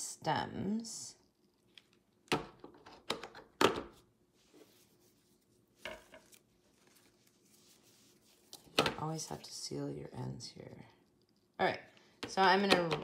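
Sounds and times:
faint handling noise: 4.3s - 9.4s
knocks and clatters on wooden table: 5.8s - 6.3s.

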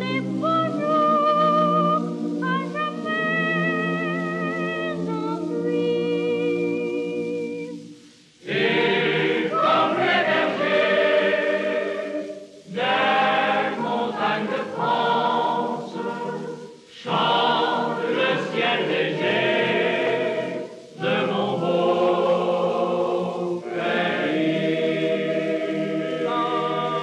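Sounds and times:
men's and boys' choir singing: 8.4s - 27.0s.

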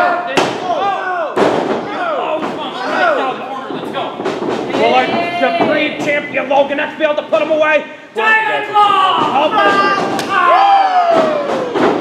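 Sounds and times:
people shouting and yelling: 0.0s - 4.0s, 4.7s - 6.6s, 8.0s - 12.0s
impacts in a wrestling ring: 0.0s - 7.6s, 8.3s - 12.0s.

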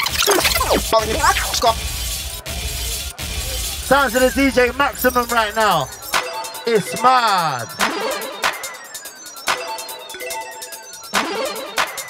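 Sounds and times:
grime music over sound system: 0.0s - 12.0s.

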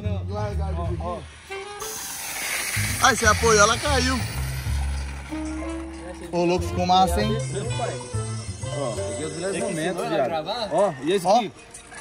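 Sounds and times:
bass-heavy music: 0.0s - 2.1s, 2.7s - 9.6s
steady hiss: 1.1s - 5.4s.

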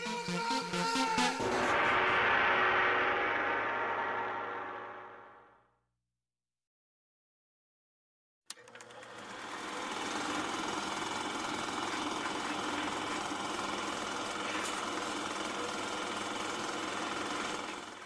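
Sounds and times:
film projector clattering: 8.5s - 18.0s.

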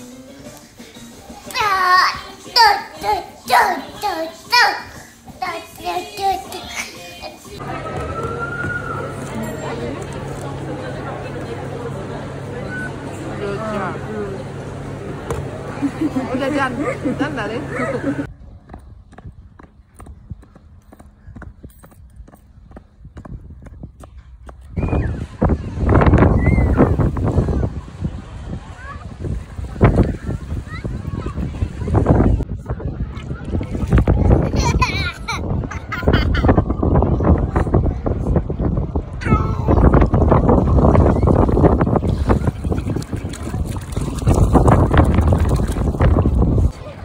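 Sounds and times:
wind buffeting microphone: 18.2s - 47.0s
small footsteps on concrete: 18.6s - 24.7s
seawater splashing: 40.6s - 46.8s.

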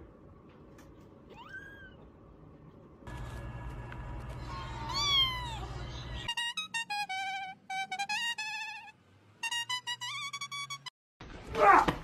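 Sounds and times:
kitten meowing: 1.3s - 2.0s, 4.6s - 5.8s.

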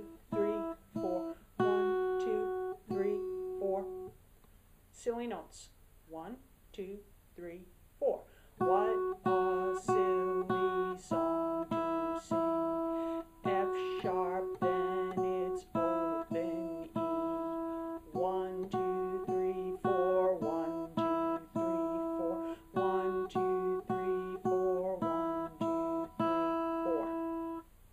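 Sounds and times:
acoustic guitar plucked notes: 0.0s - 4.2s, 8.6s - 27.7s.

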